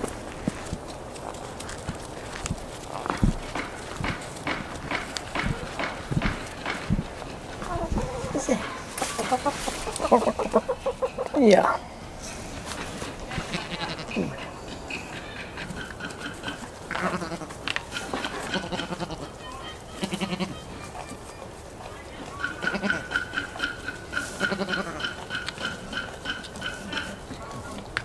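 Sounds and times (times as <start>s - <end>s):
goats bleating: 13.3s - 14.5s, 15.9s - 21.1s, 22.3s - 27.4s.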